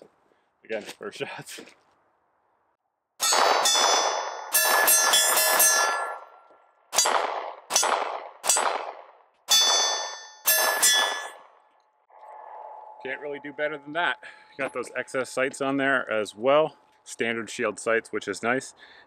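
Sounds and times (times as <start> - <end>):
pistol shots with metallic ring: 3.2 - 11.6.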